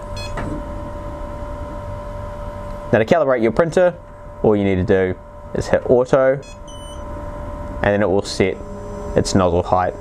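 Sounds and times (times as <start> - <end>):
short electronic beep: 0.0 - 0.4, 6.4 - 7.1
steady hum: 0.0 - 10.0
faint steady tones: 3.0 - 10.0.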